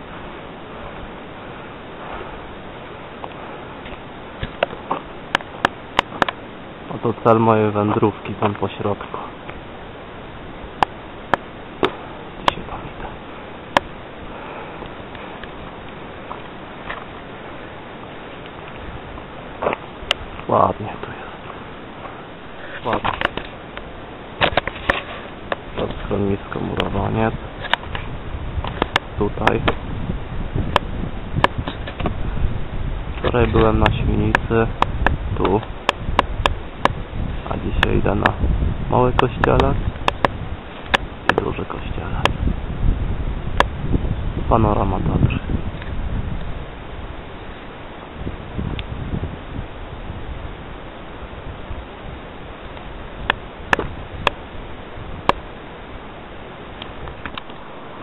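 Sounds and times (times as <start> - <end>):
wind on microphone: 0.0 - 58.0.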